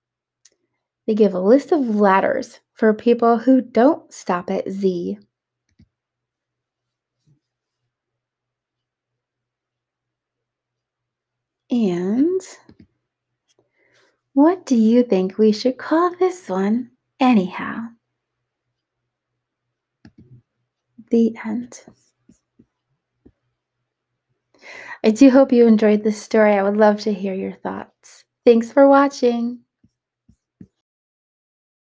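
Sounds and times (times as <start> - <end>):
woman reading aloud: 1.1 - 5.2, 11.7 - 12.6, 14.4 - 18.0, 21.0 - 21.9, 24.9 - 29.6.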